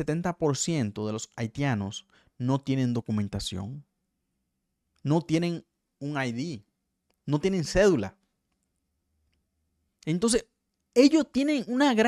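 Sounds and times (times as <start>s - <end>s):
man speaking: 0.0s - 3.9s, 5.0s - 6.6s, 7.2s - 8.2s, 10.0s - 10.4s, 11.0s - 12.0s
faint clicks: 8.5s - 10.1s.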